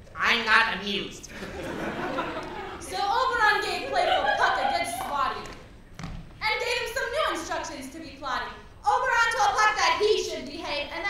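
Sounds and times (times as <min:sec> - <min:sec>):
actors speaking lines: 0:02.8 - 0:05.8.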